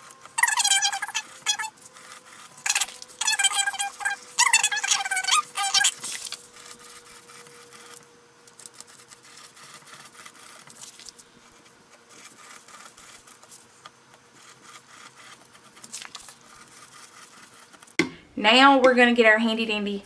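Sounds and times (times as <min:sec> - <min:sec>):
pen nib scratching: 0:00.0 - 0:18.0
pen nib squeaking on paper: 0:00.1 - 0:17.9.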